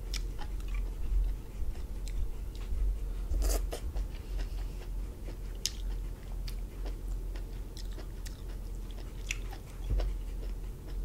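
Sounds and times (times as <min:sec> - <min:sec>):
close-up chewing: 0:00.0 - 0:11.0
low steady hum: 0:00.0 - 0:11.0.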